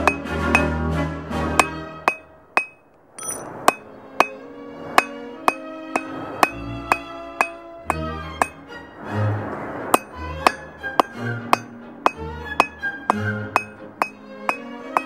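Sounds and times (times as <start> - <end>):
hammer striking steel on anvil: 0.0 - 0.8, 1.6 - 4.4, 5.0 - 8.6, 9.9 - 15.0
background music with low notes: 0.0 - 2.4, 3.8 - 15.0.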